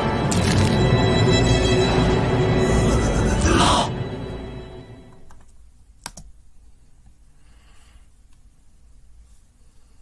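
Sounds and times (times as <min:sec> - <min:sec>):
computer mouse clicks: 0:05.3 - 0:06.4.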